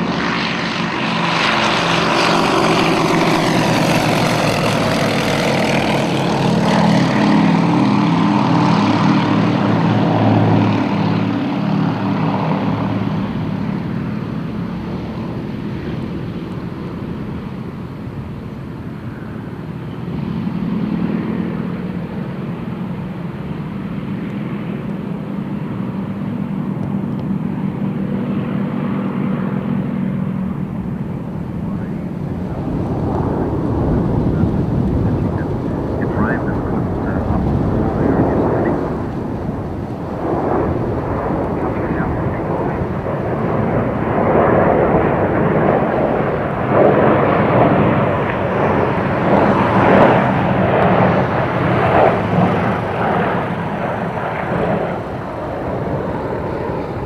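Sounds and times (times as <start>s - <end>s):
radial aircraft engines at takeoff power: 0.0s - 57.0s.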